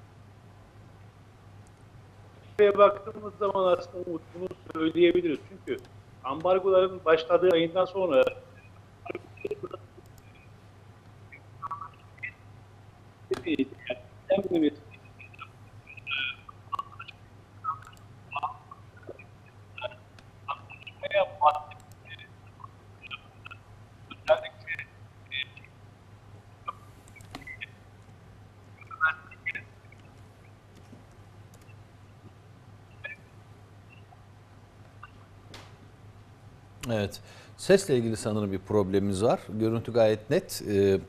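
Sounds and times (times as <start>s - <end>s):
steady low hum: 0.0s - 41.0s
clipped man's voice fragments: 2.6s - 8.5s, 13.3s - 19.2s, 19.8s - 25.7s, 28.8s - 29.6s, 36.8s - 41.0s
broken-up voice fragments: 9.1s - 9.9s, 13.3s - 25.7s.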